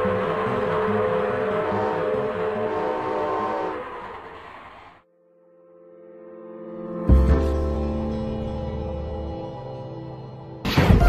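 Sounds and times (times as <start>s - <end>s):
cartoon steam train chugging: 0.0s - 5.0s
train whistle: 0.0s - 5.0s
soft sustained musical tone: 5.1s - 10.6s.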